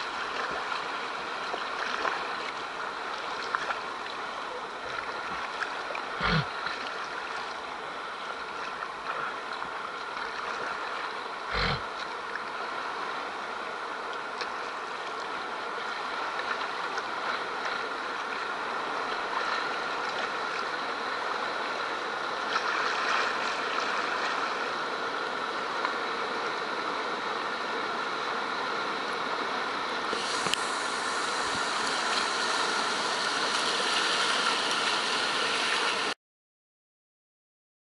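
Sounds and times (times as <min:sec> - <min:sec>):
river rapids rushing: 0:27.0 - 0:36.2.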